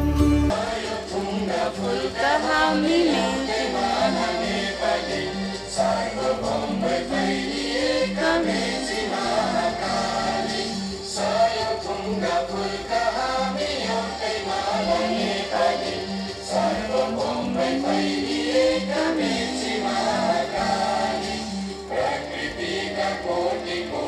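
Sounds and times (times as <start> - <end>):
choir singing with accompaniment: 0.0 - 24.0.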